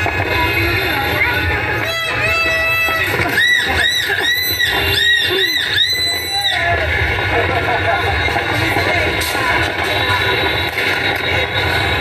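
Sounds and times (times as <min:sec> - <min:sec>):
crowd talking and shouting: 0:00.0 - 0:12.0.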